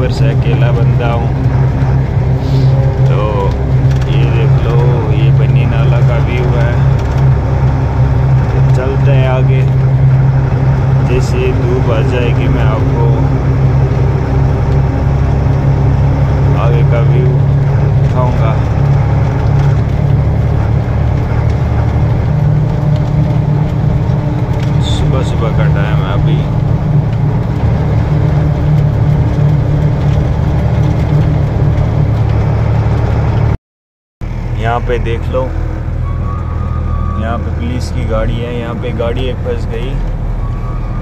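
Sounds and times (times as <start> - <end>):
truck engine drone: 0.0 - 33.6, 34.2 - 41.0.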